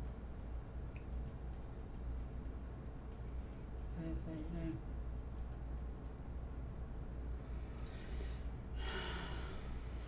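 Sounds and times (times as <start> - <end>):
low room hum: 0.0 - 10.0
person breathing hissily: 7.5 - 10.0.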